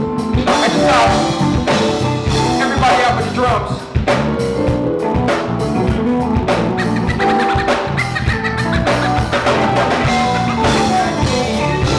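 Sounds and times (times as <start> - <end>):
drum kit beat: 0.0 - 11.9
held keyboard notes: 0.0 - 11.9.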